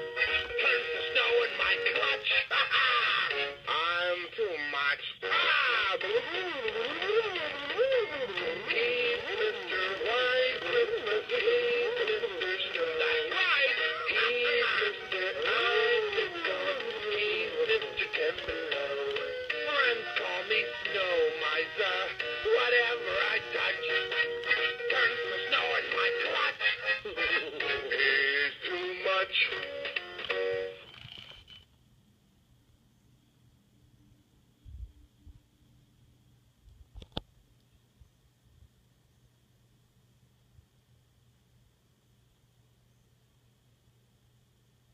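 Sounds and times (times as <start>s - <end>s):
backing music: 0.0s - 4.3s, 5.2s - 30.8s
toy speaker wavering melody: 5.3s - 28.1s.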